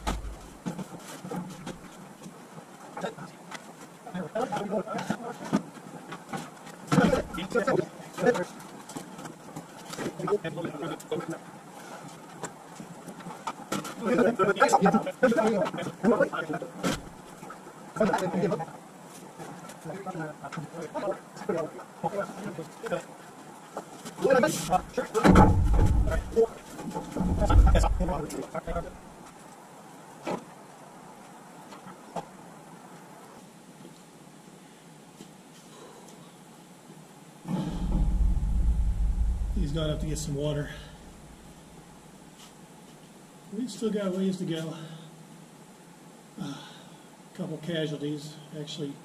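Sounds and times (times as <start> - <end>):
sharp knock: 0.0 - 0.4, 25.3 - 26.4, 37.5 - 41.4
man talking indistinctly: 27.4 - 28.9, 39.6 - 41.0.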